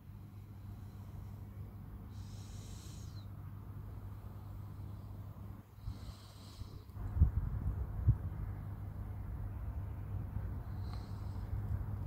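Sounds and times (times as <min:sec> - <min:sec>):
low rumble of wind or traffic: 0:00.0 - 0:12.0.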